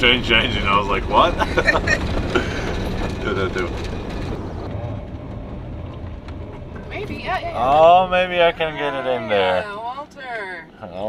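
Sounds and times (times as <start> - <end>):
truck engine and tyre rumble: 0.0 - 11.0.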